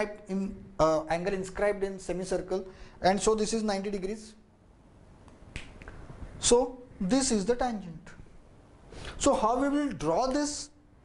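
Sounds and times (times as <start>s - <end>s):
man speaking: 0.0s - 4.4s, 6.4s - 8.2s, 9.2s - 10.8s.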